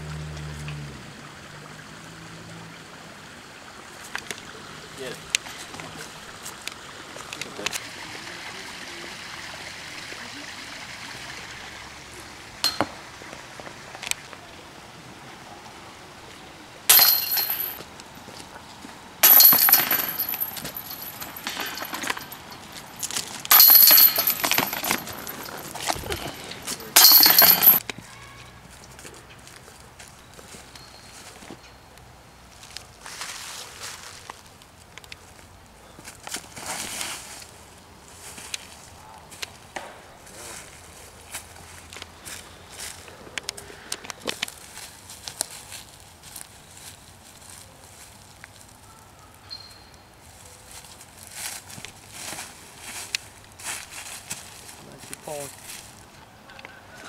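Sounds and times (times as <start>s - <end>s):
metal chains clattering: 16.9s - 17.8s, 19.2s - 27.8s.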